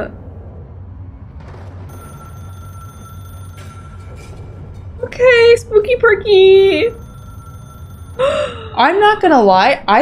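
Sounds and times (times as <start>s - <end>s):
low hum: 0.0s - 10.0s
telephone-like ringing tone: 1.9s - 4.4s, 6.4s - 8.7s.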